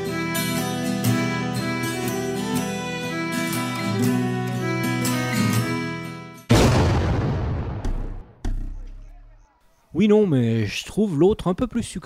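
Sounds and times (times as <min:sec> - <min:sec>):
guitar music: 0:00.0 - 0:06.5
loud booming impact: 0:06.5 - 0:08.8
deep thump: 0:06.5 - 0:09.1.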